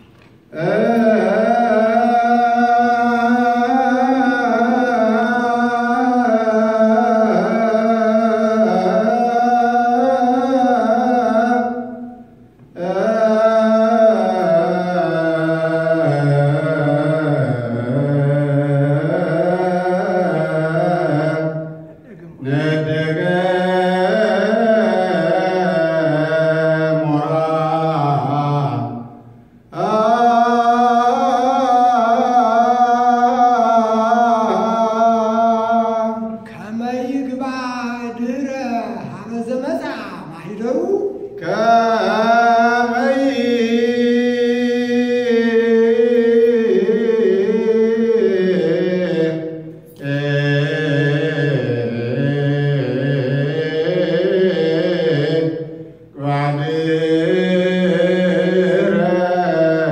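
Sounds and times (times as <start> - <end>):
men chanting liturgical chant: 0.5 - 59.9.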